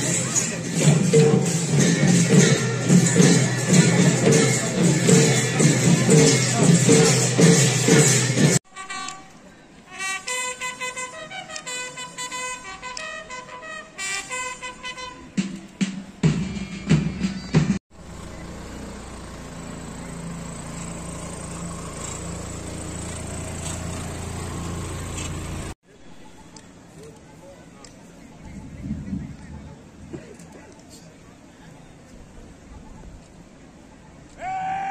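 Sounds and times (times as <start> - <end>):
band music: 0.0 - 17.8
open-air background noise: 0.0 - 34.9
jeep engine humming: 18.0 - 25.8.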